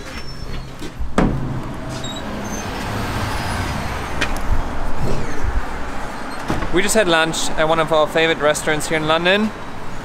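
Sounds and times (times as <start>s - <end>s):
road traffic passing: 0.0s - 10.0s.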